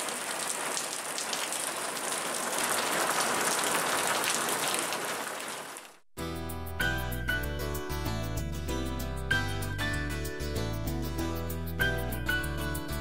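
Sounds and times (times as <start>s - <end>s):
water dripping: 0.0s - 6.0s.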